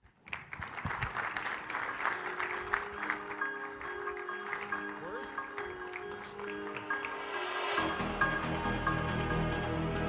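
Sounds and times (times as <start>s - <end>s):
audience applauding: 0.0s - 7.9s
music with held notes: 2.2s - 10.0s.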